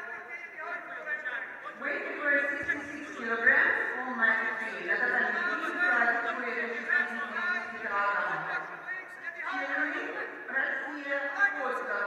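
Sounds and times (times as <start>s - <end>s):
man speaking in a large hall: 0.0s - 12.0s.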